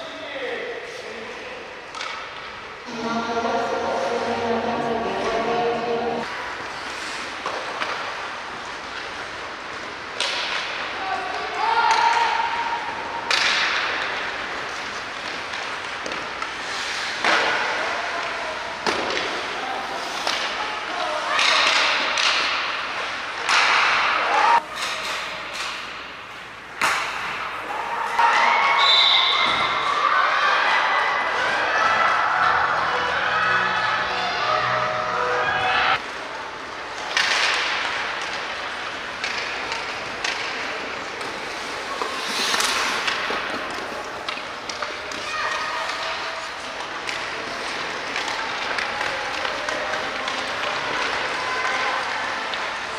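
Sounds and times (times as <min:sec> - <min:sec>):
hockey sticks and puck knocking: 0:06.9 - 0:12.4, 0:13.2 - 0:20.6, 0:21.3 - 0:28.3, 0:36.9 - 0:51.4
people shouting and cheering: 0:23.6 - 0:24.7, 0:27.5 - 0:36.0.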